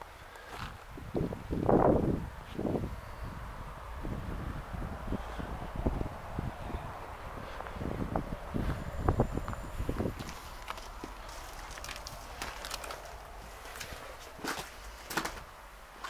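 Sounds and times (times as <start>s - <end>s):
footsteps in snow: 8.6s - 16.0s
footsteps on charred debris: 9.4s - 16.0s.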